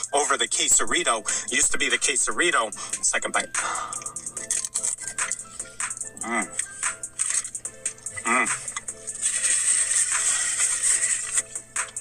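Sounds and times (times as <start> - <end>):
crunching taco shell: 6.5 - 12.0.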